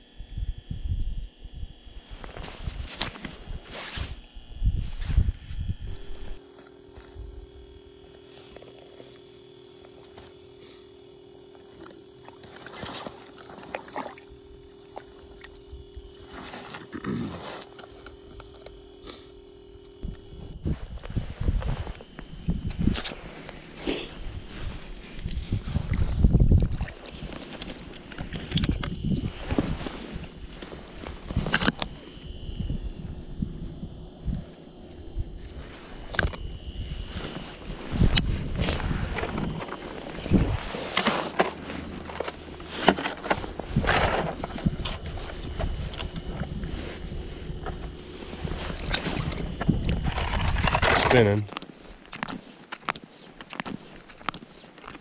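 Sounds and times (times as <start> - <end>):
wind on microphone: 0.1 - 6.4, 20.0 - 23.3, 24.1 - 27.4, 28.2 - 40.8, 43.4 - 50.9
clothing rubbing on microphone: 2.0 - 6.4, 20.4 - 27.9, 36.8 - 50.6.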